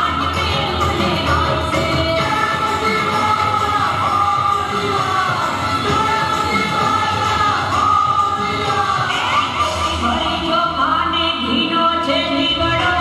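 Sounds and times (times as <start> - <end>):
woman singing into microphone: 0.0 - 13.0.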